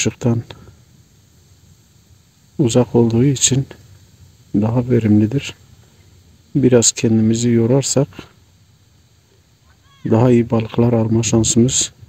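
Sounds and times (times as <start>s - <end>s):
man speaking: 2.6s - 3.8s, 4.6s - 5.6s, 6.6s - 8.3s, 9.7s - 12.0s.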